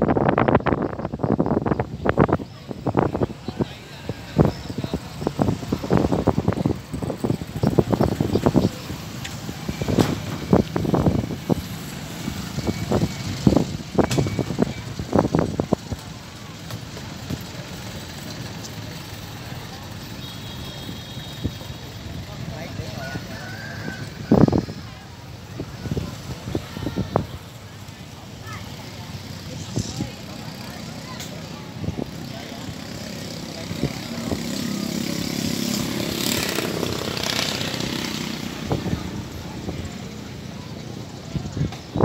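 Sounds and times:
people talking outdoors: 0:00.0 - 0:42.0.

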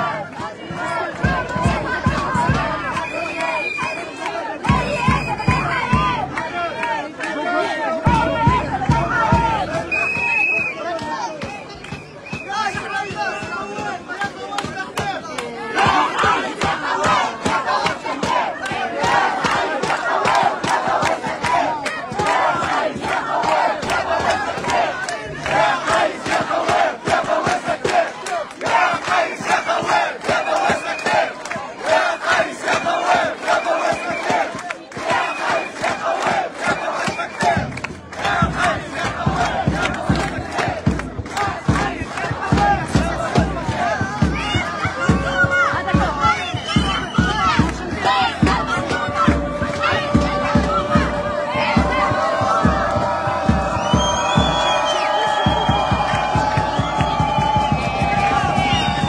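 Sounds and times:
crowd chanting: 0:00.0 - 0:59.0
hand clapping: 0:08.8 - 0:15.6, 0:16.2 - 0:43.9.

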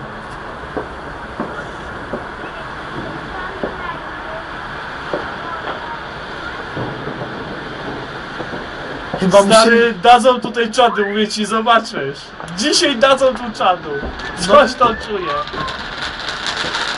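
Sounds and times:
distant fireworks bangs and pops: 0:00.0 - 0:09.8, 0:12.4 - 0:16.9
steady background noise: 0:00.0 - 0:16.9.

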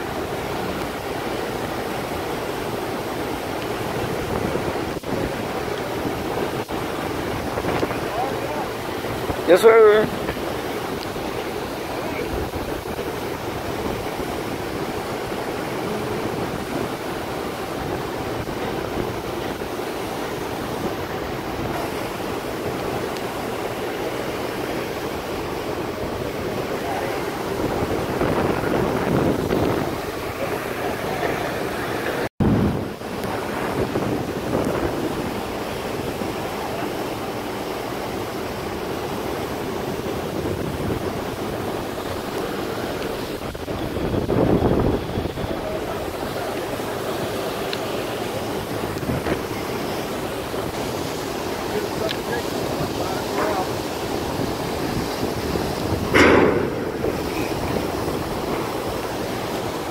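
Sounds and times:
fast-flowing river water: 0:00.0 - 0:59.9
wind buffeting microphone: 0:00.0 - 0:59.9.

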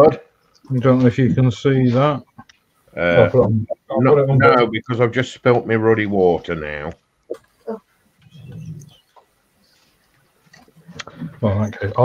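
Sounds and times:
faint clicks: 0:02.3 - 0:02.9
person murmuring: 0:03.0 - 0:04.9.

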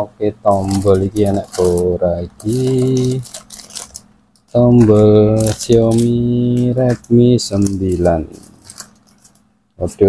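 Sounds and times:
plastic bags crinkling: 0:00.5 - 0:09.5.

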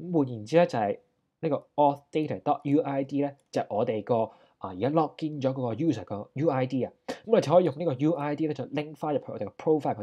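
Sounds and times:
narrator talking: 0:00.0 - 0:10.0.

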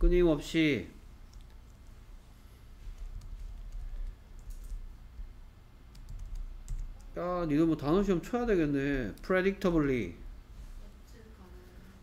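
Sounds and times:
low steady hum: 0:00.0 - 0:12.0
computer clicks: 0:01.3 - 0:02.0, 0:05.9 - 0:07.2.

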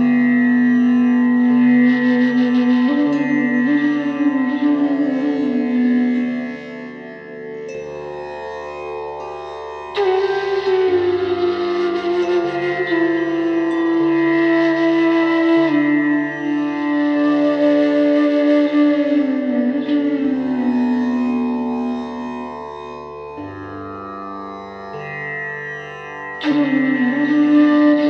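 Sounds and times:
indian classical melody: 0:00.0 - 0:28.0.

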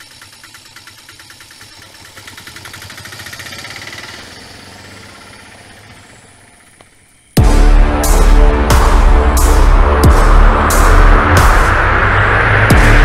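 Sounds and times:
auto-rickshaw engine putter: 0:00.0 - 0:07.4.

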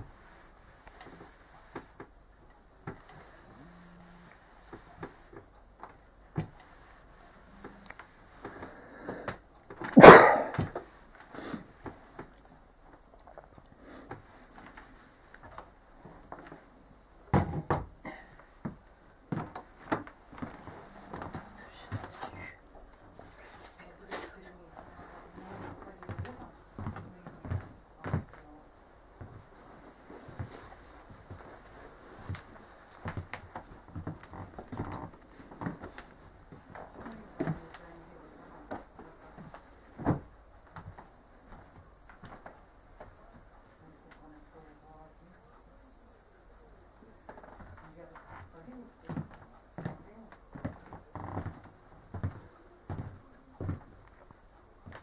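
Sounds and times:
household objects knocking and clunking: 0:17.3 - 0:17.9.

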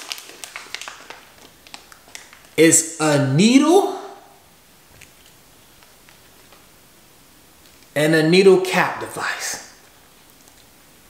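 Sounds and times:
plastic and paper pouch crinkling: 0:00.0 - 0:02.6, 0:04.9 - 0:06.7.

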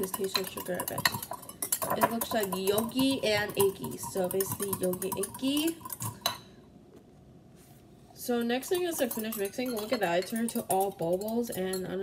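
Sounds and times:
spoon clinking against cup: 0:00.0 - 0:06.5, 0:08.6 - 0:12.0.

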